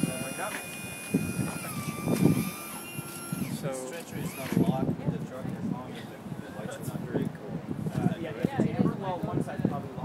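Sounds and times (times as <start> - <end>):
stretcher motor whining: 0.0 - 4.7.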